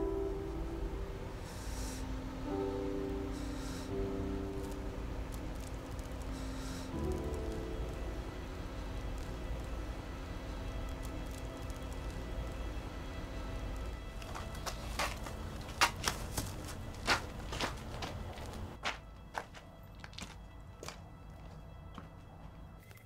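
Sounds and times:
faint sustained music: 0.0s - 23.0s
low hum: 0.0s - 23.0s.

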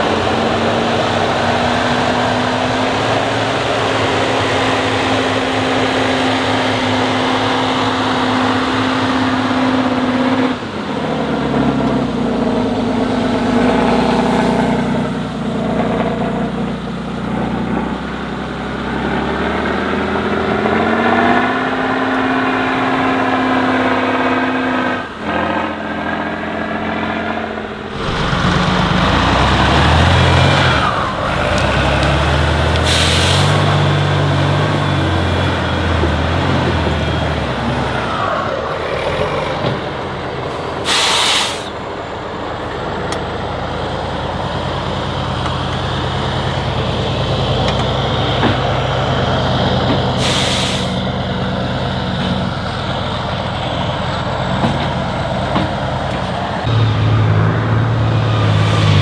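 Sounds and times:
diesel truck engines revving: 0.0s - 59.0s.

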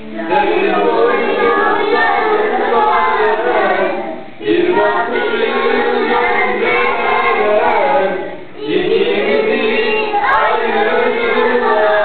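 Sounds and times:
children singing: 0.0s - 12.0s.

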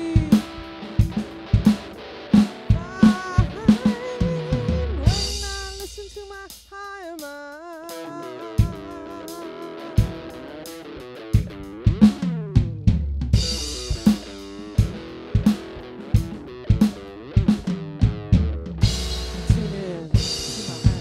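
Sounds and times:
electric guitar held notes: 0.0s - 5.2s, 13.4s - 21.0s
drum kit beat: 0.0s - 21.0s.

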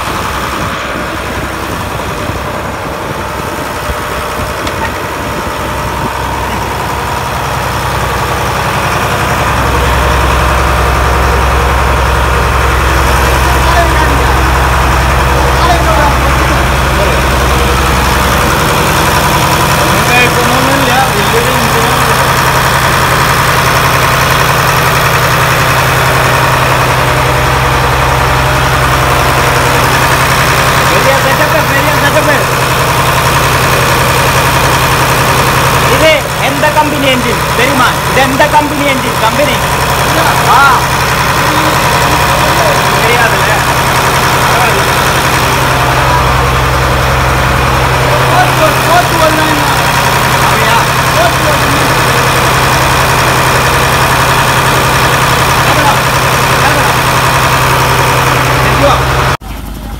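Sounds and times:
diesel engine running: 0.0s - 59.9s
people's voices: 8.9s - 22.4s, 35.9s - 52.6s.

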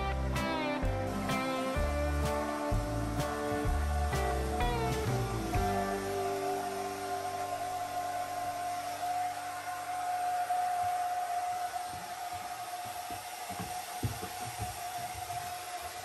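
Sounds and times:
hair dryer running: 0.0s - 16.0s.

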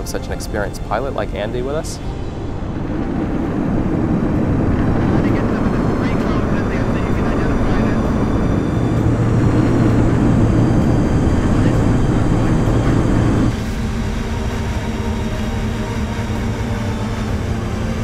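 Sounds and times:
light aircraft engine drone: 0.0s - 18.0s.

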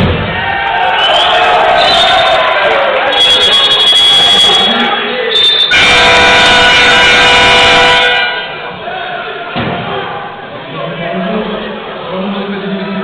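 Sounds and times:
crowd noise in gym: 0.0s - 13.0s
high steady whistle tone: 0.9s - 2.4s, 3.0s - 8.2s
arena horn buzzing: 5.7s - 8.6s.

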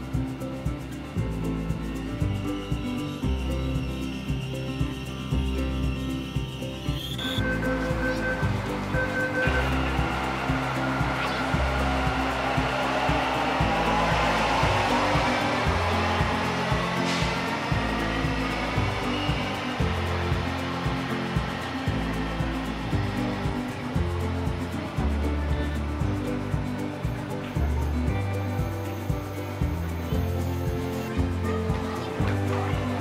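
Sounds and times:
background music: 0.0s - 33.0s
train rushing with electric whine: 1.9s - 33.0s.

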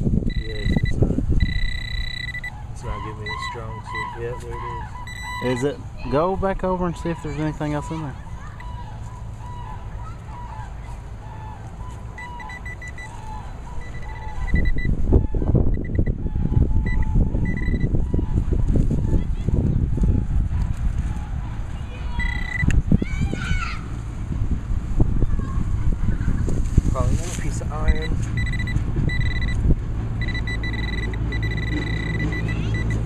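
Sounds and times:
pinpointer high beeps: 0.2s - 2.6s, 3.2s - 4.2s, 5.0s - 5.8s, 12.2s - 13.2s, 13.8s - 15.0s, 15.7s - 16.2s, 16.8s - 17.9s, 22.2s - 22.8s, 27.8s - 29.6s, 30.2s - 33.0s.

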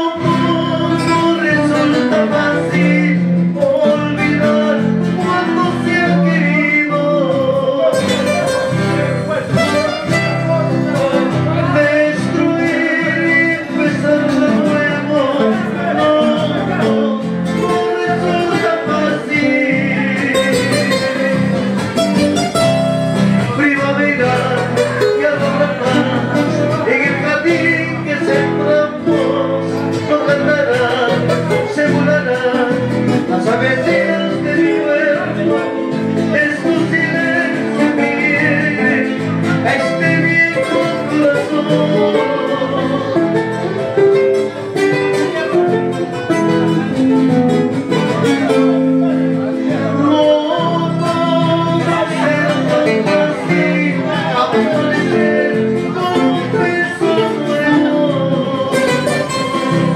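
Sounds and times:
acoustic guitars playing: 0.0s - 59.9s
man singing into a microphone: 0.0s - 59.9s.

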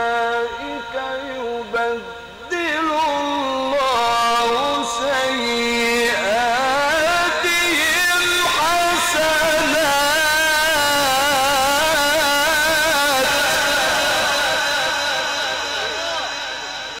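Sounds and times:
man reciting melismatic chant: 0.0s - 17.0s.

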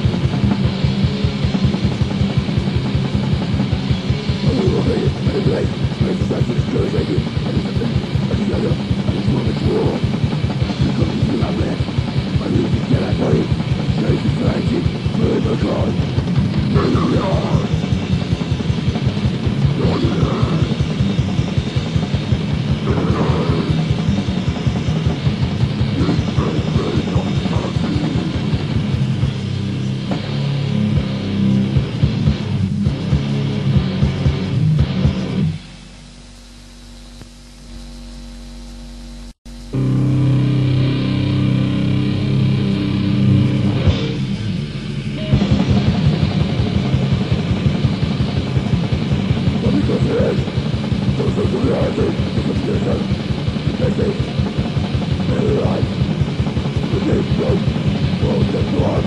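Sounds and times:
death metal music: 0.0s - 36.3s, 39.5s - 59.0s.

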